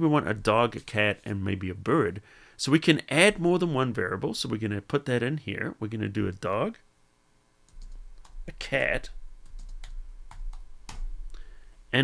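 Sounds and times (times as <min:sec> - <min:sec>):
keyboard typing: 0:07.7 - 0:08.6, 0:09.4 - 0:11.1.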